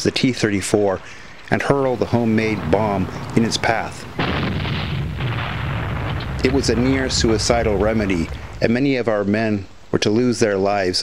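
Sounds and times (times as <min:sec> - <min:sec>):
explosion with rumbling tail: 0:02.4 - 0:09.3.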